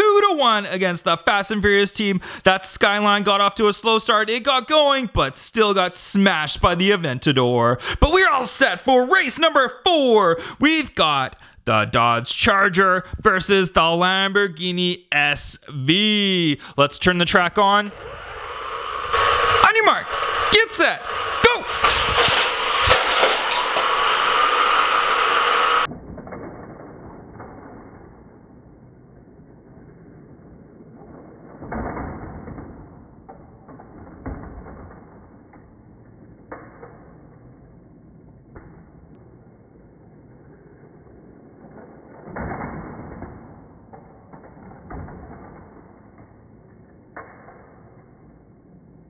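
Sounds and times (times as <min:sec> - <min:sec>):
motorized toy booster whirring: 0:17.9 - 0:25.9
knocks and clacks: 0:21.4 - 0:24.4
toy cars clattering on plastic track: 0:21.7 - 0:24.4.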